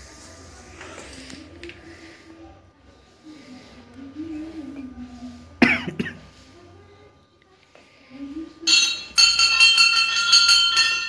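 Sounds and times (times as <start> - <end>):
faint murmuring voices: 0.0 - 11.0
person coughing: 5.6 - 6.2
small metal bell ringing rapidly: 8.7 - 11.0.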